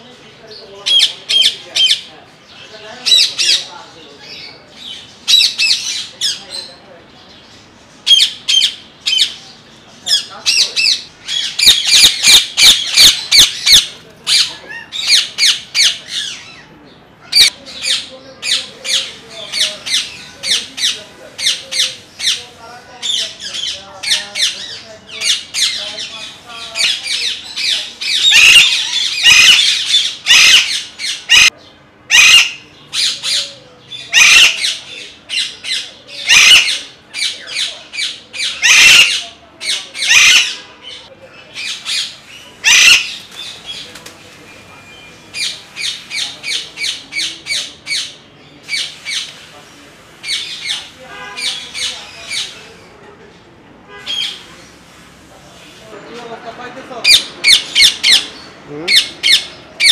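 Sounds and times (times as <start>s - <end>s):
parakeets screeching: 0.5s - 44.0s, 44.8s - 49.4s, 50.2s - 53.0s, 53.9s - 54.8s, 57.0s - 59.9s.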